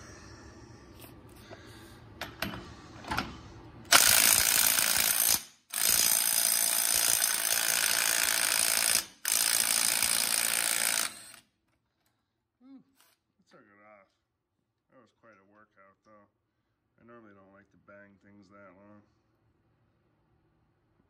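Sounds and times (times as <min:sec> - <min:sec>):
impact wrench hammering: 0:03.9 - 0:11.4.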